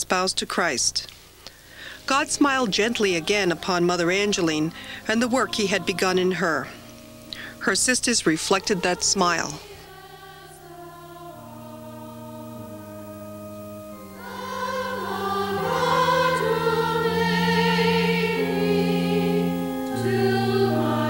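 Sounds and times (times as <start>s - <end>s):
choir singing soft chords: 1.5s - 21.0s.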